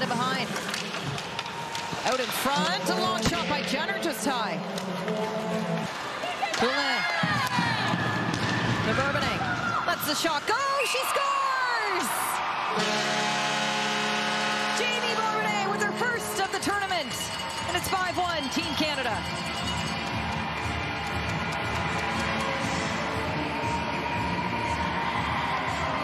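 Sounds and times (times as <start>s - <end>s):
crowd cheering and shouting: 1.0s - 26.0s
arena goal horn: 12.7s - 17.0s
music over sound system: 19.3s - 26.0s.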